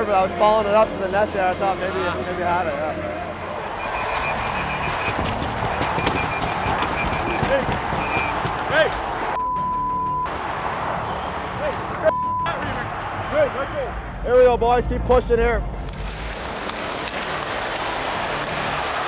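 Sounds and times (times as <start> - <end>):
arena crowd noise: 0.0 - 9.4, 10.2 - 15.1, 16.5 - 19.0
censor bleep: 3.8 - 7.4, 9.4 - 10.3, 12.1 - 12.6.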